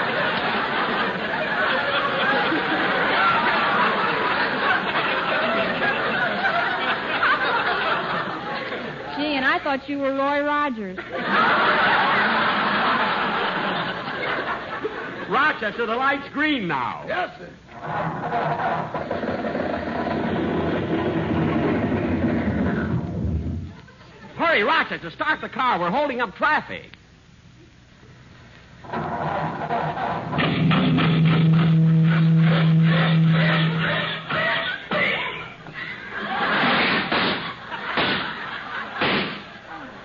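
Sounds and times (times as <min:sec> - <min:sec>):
engine backfire bangs: 0:30.3 - 0:33.5, 0:39.0 - 0:39.5.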